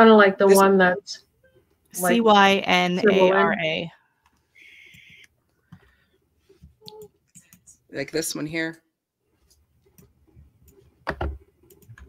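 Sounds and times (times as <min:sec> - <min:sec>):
soft hiss: 0:04.4 - 0:05.3.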